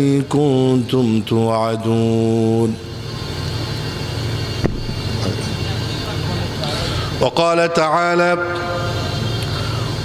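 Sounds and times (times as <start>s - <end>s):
sound system hum: 0.0s - 10.0s.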